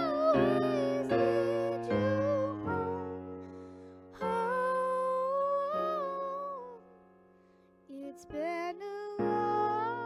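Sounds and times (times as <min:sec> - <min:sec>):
girl singing a long note: 0:00.0 - 0:03.2
piano chords: 0:00.0 - 0:10.0.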